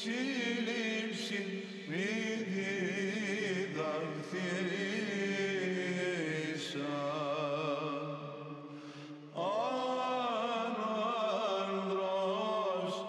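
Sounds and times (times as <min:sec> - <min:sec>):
male choir chanting a hymn: 0:00.0 - 0:08.6, 0:09.4 - 0:13.0.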